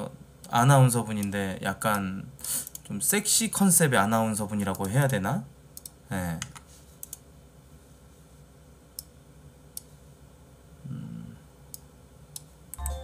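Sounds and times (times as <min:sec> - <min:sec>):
computer mouse clicks: 0:02.6 - 0:02.9, 0:05.8 - 0:07.2.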